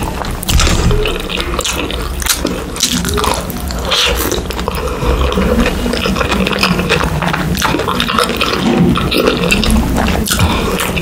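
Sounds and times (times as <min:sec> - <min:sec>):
wet chewing mouth noises: 0:00.0 - 0:11.0.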